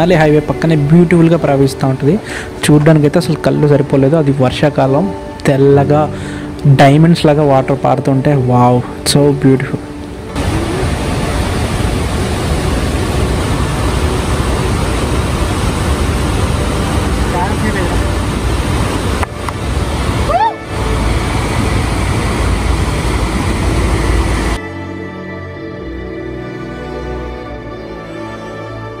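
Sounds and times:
river rushing: 0.0s - 7.8s, 8.4s - 29.0s.

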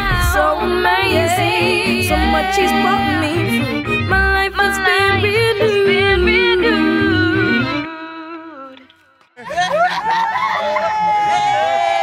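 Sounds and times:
pop backing track: 0.0s - 9.0s.

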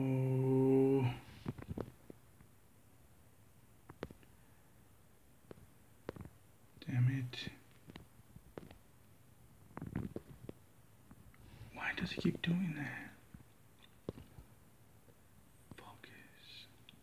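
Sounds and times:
man muttering in a whisper: 0.0s - 1.3s, 11.7s - 13.2s.

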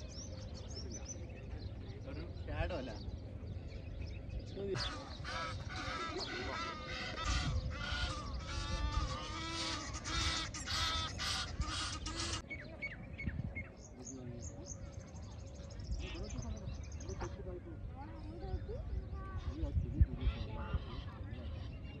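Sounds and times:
waterbirds calling: 1.9s - 22.0s.

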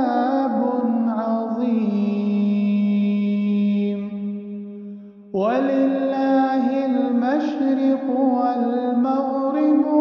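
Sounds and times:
person reciting in melodic chant: 0.0s - 4.2s, 5.4s - 10.0s.

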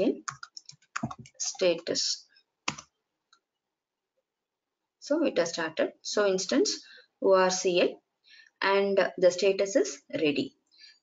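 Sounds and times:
keyboard keystroke: 0.3s - 1.4s.

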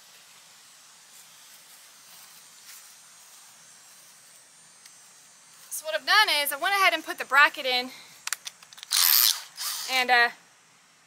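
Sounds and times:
drill chuck ratcheting: 8.4s - 10.0s.

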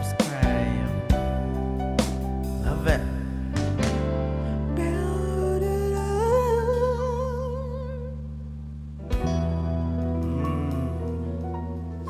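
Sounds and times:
backing track of sustained chords: 0.0s - 12.0s
person humming with vibrato: 10.0s - 12.0s.

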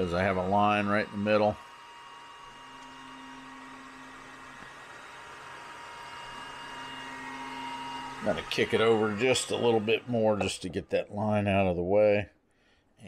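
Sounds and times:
stepper motor whine: 0.0s - 10.9s.

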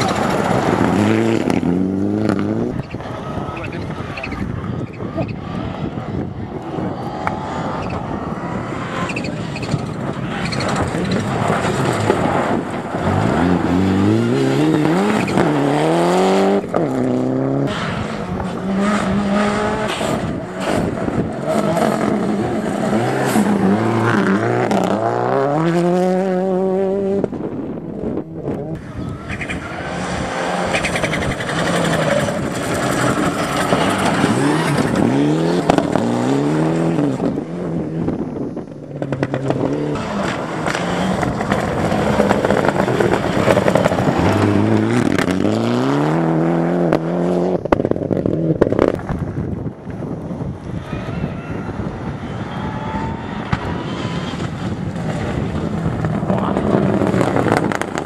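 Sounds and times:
rally car engines revving: 0.0s - 58.0s.

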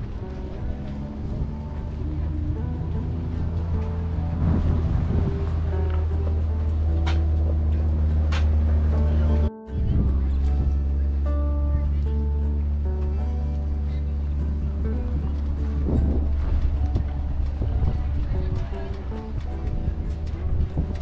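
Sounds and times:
melody of held notes: 0.0s - 21.0s.

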